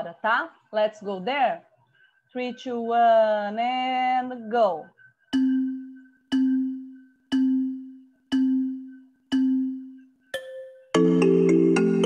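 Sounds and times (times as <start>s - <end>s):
low countdown chime: 5.3s - 12.0s.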